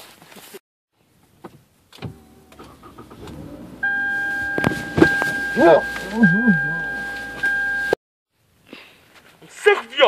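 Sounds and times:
car low rumble: 1.1s - 8.0s
loud steady high tone: 3.8s - 8.0s.

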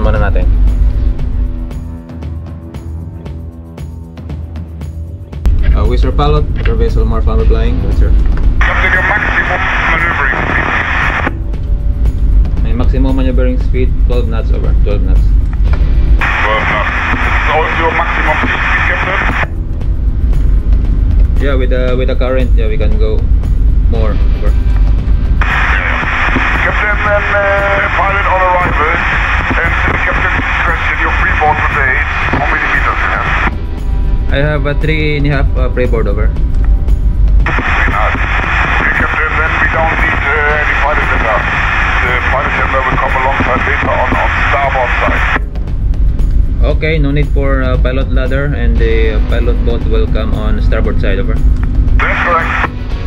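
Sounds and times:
steady low rumble: 0.0s - 3.6s, 4.4s - 53.0s
narrow-band radio voice: 8.6s - 11.3s, 16.2s - 19.5s, 25.4s - 33.5s, 37.5s - 45.4s, 52.0s - 52.7s
radio hiss burst: 8.6s - 11.3s, 16.2s - 19.5s, 25.4s - 33.5s, 37.4s - 45.4s, 52.0s - 52.7s.

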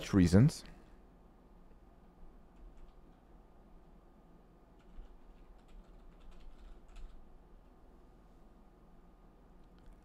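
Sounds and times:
computer keyboard typing: 2.5s - 3.2s, 4.8s - 7.3s.

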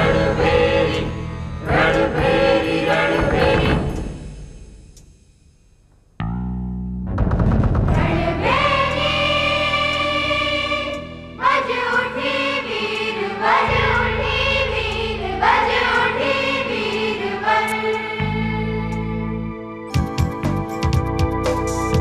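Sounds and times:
choir singing: 0.0s - 4.2s, 8.0s - 19.8s.

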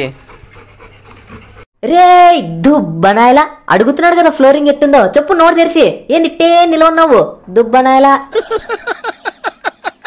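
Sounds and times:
dog panting: 0.1s - 1.7s.

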